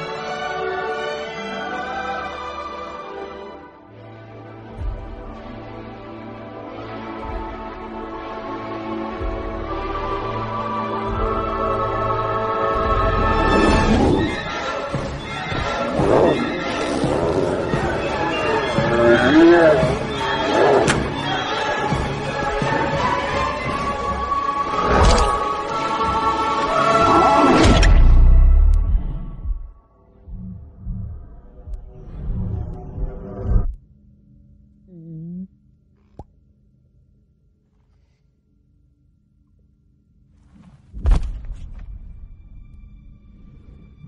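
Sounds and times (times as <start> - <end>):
background music: 0.0 - 35.0, 41.1 - 44.0.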